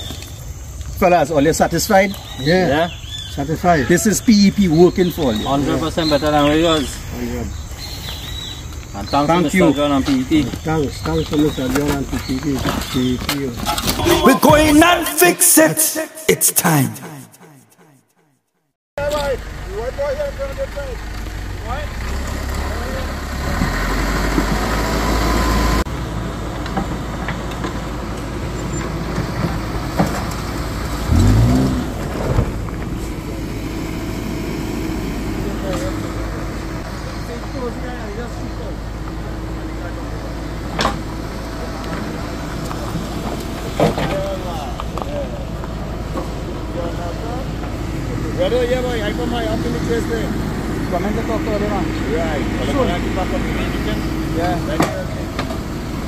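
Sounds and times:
diesel engine rumbling: 0.0s - 15.2s, 19.0s - 56.0s
people talking indistinctly: 8.9s - 17.9s, 46.6s - 55.4s
tyres on loose road fill: 19.0s - 56.0s
car engine revving: 21.1s - 26.3s, 30.0s - 43.8s.

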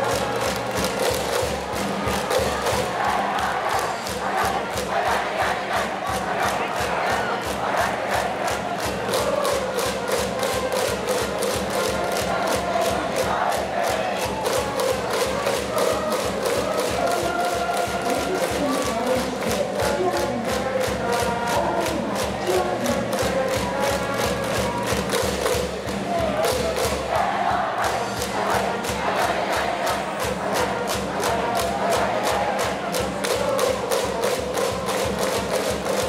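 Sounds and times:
steady drumbeat: 0.0s - 36.0s
crowd chanting in unison: 1.5s - 10.0s, 11.6s - 14.4s, 26.1s - 34.2s.

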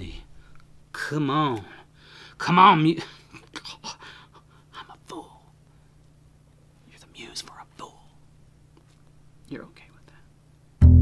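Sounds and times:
faint low hum: 0.0s - 11.0s
man whispering: 4.7s - 5.6s, 6.8s - 8.2s, 9.4s - 10.4s.

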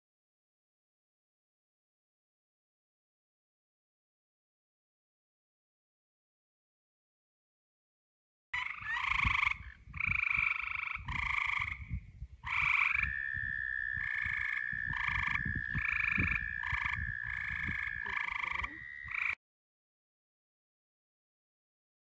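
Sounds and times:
frogs trilling: 8.6s - 19.4s.

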